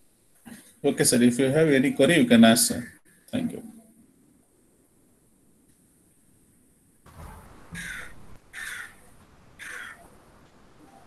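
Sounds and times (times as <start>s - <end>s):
crow cawing: 7.7s - 10.1s.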